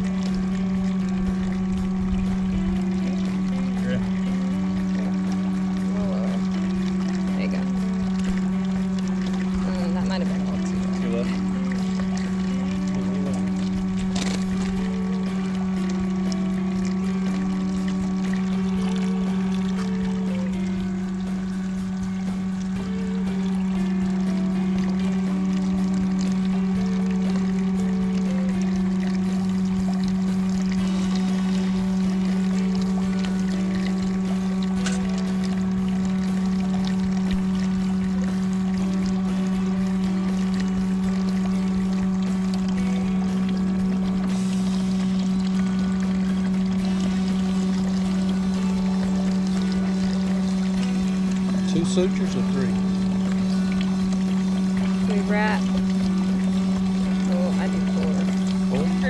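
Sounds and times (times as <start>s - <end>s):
background music: 0.0s - 59.0s
pump humming: 0.0s - 59.0s
water pouring: 0.0s - 59.0s.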